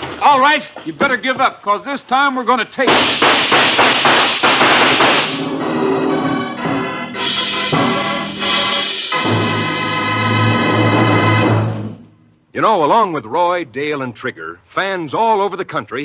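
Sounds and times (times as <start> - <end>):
gunfire sound effects: 2.9 - 5.4
dramatic organ chords: 2.9 - 12.4.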